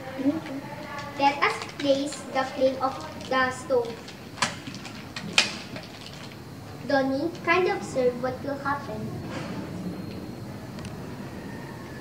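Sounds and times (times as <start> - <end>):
objects clicking and knocking: 0.4 - 6.4.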